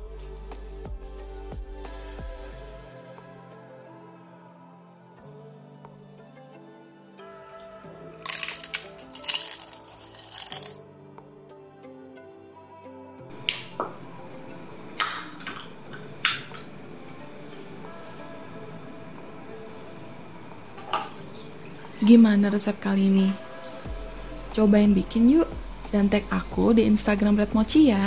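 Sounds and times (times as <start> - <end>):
soft background music: 0.0 - 28.0
can clicks: 13.4 - 14.0, 15.0 - 16.7.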